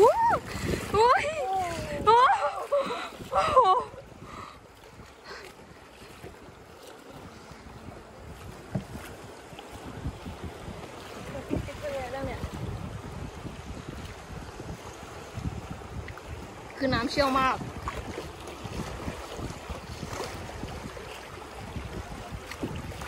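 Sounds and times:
paddle splashes: 0:00.0 - 0:23.0
river water rushing: 0:00.0 - 0:23.0
wind buffeting microphone: 0:00.0 - 0:23.0.

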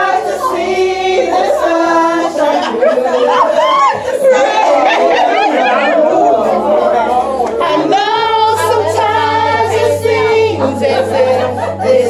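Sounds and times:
music: 0:00.0 - 0:12.0
voices singing: 0:00.0 - 0:12.0.

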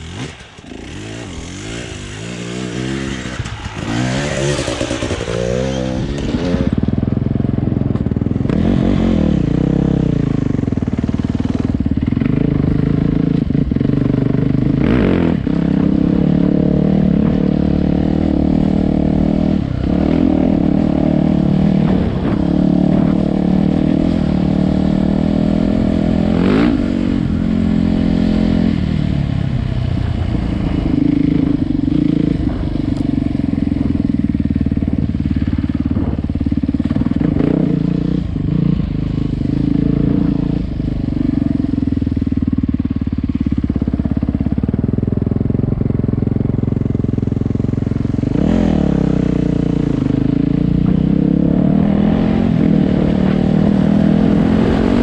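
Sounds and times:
dirt bike engine revving: 0:00.0 - 0:07.6, 0:08.3 - 0:41.7, 0:46.3 - 0:55.0.

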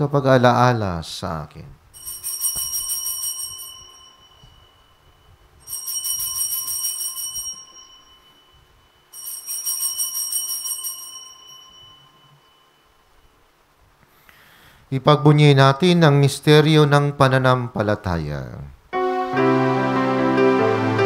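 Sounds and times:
altar bells jingling: 0:02.0 - 0:13.4.

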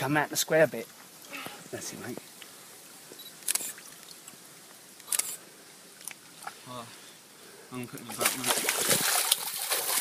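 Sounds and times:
camera shutter clicks: 0:03.4 - 0:03.7, 0:05.0 - 0:05.4.

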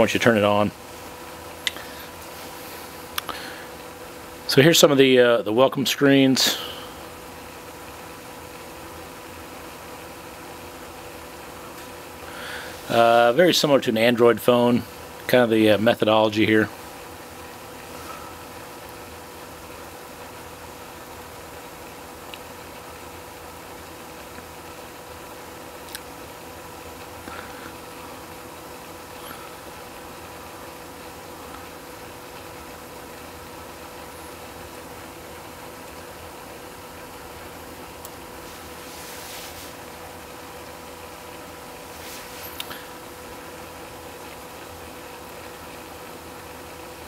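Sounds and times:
low background hum: 0:00.0 - 0:47.0.

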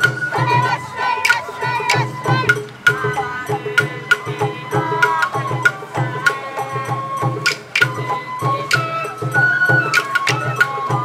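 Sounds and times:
bamboo flute: 0:00.0 - 0:11.0
crowd shouting calls: 0:00.0 - 0:11.0.

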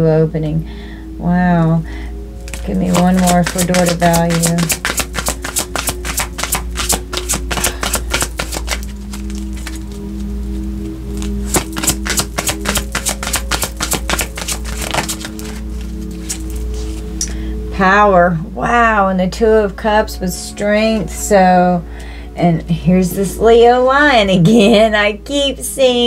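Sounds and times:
soft background music: 0:00.0 - 0:26.0
cards being shuffled: 0:02.4 - 0:10.3, 0:11.1 - 0:17.1.

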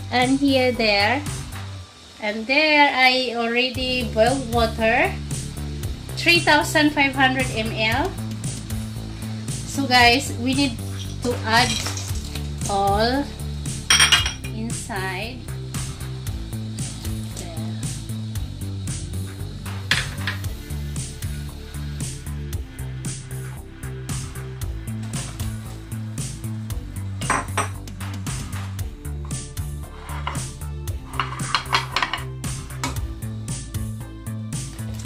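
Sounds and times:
background music: 0:00.0 - 0:35.0
bowls knocking against steel pot: 0:13.9 - 0:14.5, 0:27.2 - 0:27.8, 0:31.1 - 0:33.0.

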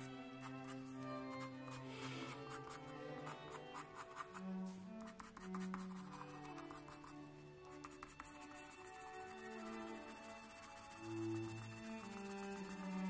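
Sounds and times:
pencil shading on paper: 0:00.0 - 0:13.0
soft background music: 0:00.0 - 0:13.0.

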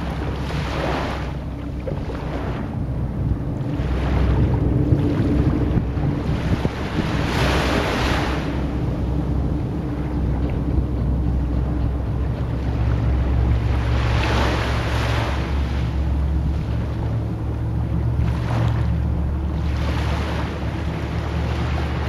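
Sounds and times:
low motor drone: 0:00.0 - 0:22.0
rushing water: 0:00.0 - 0:22.0
wind: 0:00.0 - 0:22.0.

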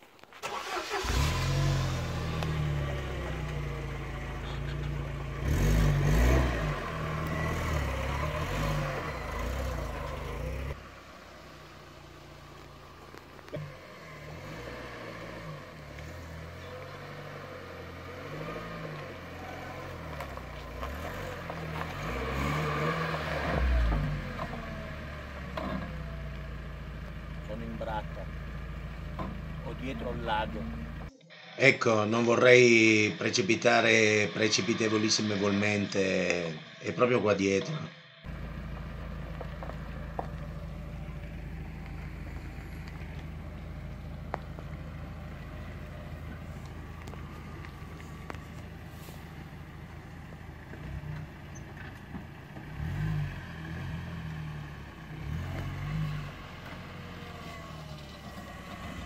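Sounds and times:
van engine starting and revving: 0:00.1 - 0:31.1, 0:31.9 - 0:59.0.

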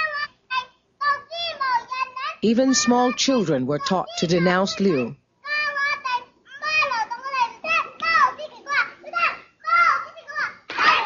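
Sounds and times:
children shouting together: 0:00.0 - 0:03.4, 0:04.0 - 0:11.0
child chanting slogan: 0:00.0 - 0:11.0.

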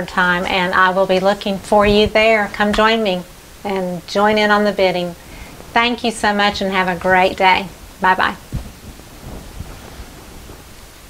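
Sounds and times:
microphone handling rumble: 0:00.3 - 0:11.0
clothing brushing microphone: 0:01.7 - 0:02.5, 0:08.4 - 0:11.0
soft thumps: 0:01.7 - 0:02.9, 0:08.4 - 0:10.8.

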